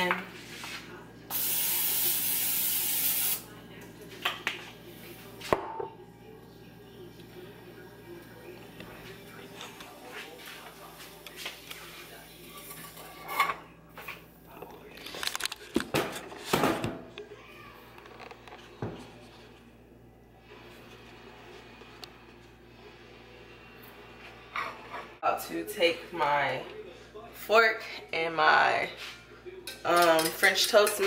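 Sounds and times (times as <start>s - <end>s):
cooking spray hissing: 1.3s - 3.4s
kitchen things knocking and clattering: 15.7s - 17.1s, 29.6s - 31.0s.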